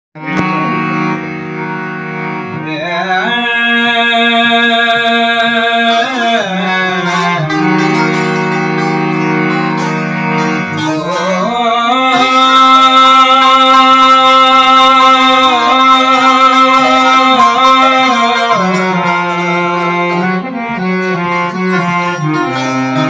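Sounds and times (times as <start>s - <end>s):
harmonium chords: 0.2s - 23.0s
man singing: 2.5s - 8.6s, 10.7s - 23.0s.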